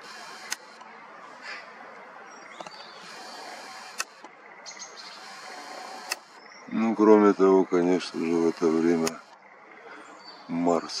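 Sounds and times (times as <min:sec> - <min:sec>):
sharp clicks: 0:00.0 - 0:01.0, 0:01.9 - 0:06.5, 0:08.5 - 0:09.4
faint bird chirps: 0:00.0 - 0:11.0
outdoor background hiss: 0:00.0 - 0:11.0.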